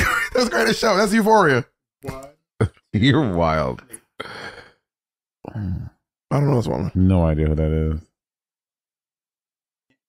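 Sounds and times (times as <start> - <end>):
man speaking: 0.0 - 2.4
man sighing: 4.2 - 4.8, 5.4 - 5.9.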